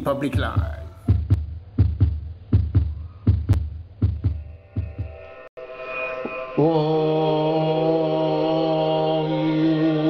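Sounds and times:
heartbeat thumps: 0.0s - 5.4s.

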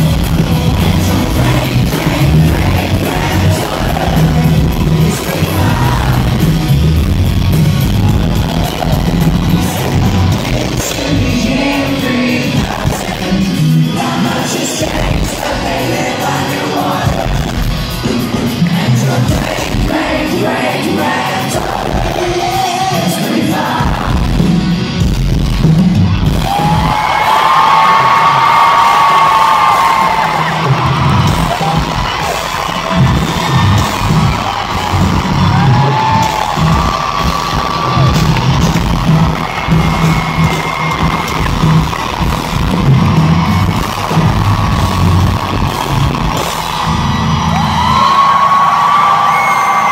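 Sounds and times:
audience whooping and cheering: 0.0s - 23.8s, 26.0s - 49.9s
pop-punk band playing live: 0.0s - 49.9s.

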